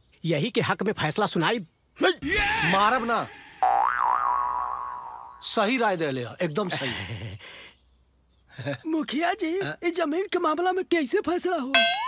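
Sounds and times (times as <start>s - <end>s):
comic boing sound effect: 3.6s - 5.2s.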